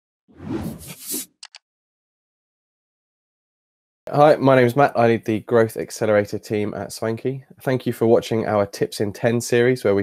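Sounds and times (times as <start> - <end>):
whoosh: 0.3 - 1.3.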